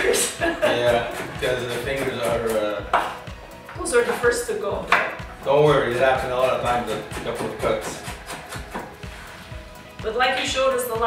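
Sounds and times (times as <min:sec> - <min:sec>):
background music: 0:00.0 - 0:11.0
knife chopping on wooden board: 0:00.7 - 0:03.2, 0:06.0 - 0:09.0.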